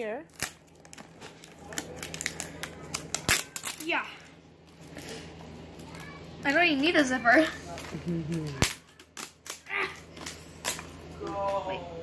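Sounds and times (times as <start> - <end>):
packaging crackling and clicking: 0.3 - 3.9.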